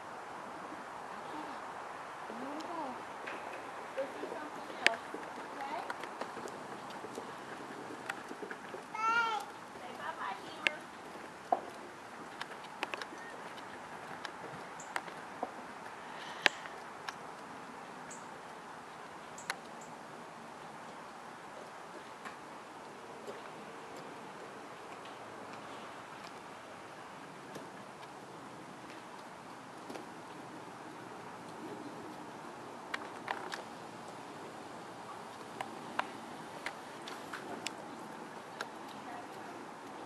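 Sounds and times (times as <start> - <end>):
steady low hiss: 0.0 - 40.0.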